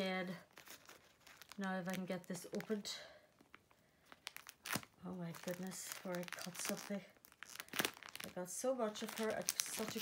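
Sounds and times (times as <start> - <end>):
packaging tearing: 0.5 - 2.7, 4.1 - 8.4, 9.0 - 10.0.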